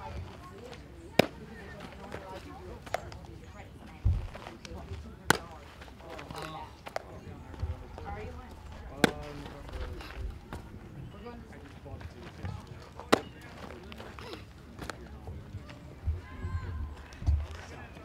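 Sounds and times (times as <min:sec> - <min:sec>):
baseball popping into leather mitt: 0:01.2 - 0:01.4, 0:05.3 - 0:05.5, 0:08.9 - 0:09.7, 0:13.0 - 0:13.4.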